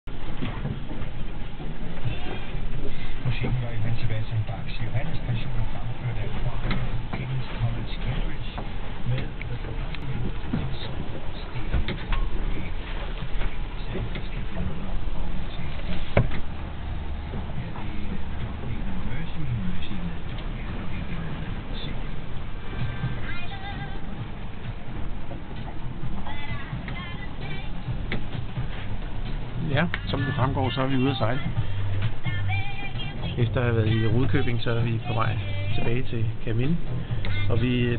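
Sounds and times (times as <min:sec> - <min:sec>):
low rumble inside boat cabin: 0:00.0 - 0:37.9
sea rushing: 0:00.0 - 0:37.9
light clicks and knocks: 0:06.6 - 0:07.3, 0:15.7 - 0:16.6.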